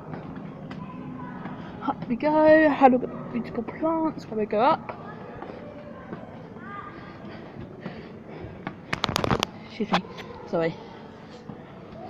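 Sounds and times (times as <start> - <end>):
distant voices: 0.0 - 8.9
sharp clicks and knocks: 8.9 - 9.5.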